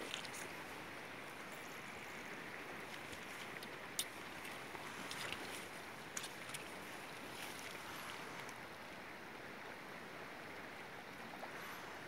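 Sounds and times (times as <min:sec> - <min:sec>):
light wind: 0:00.0 - 0:12.0
small waves lapping at shore: 0:00.0 - 0:12.0.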